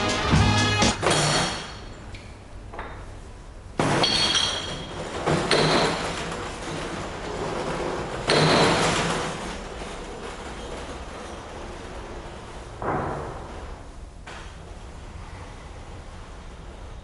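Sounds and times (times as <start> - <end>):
glassware clinking and clattering: 1.0 - 2.0, 3.8 - 6.3.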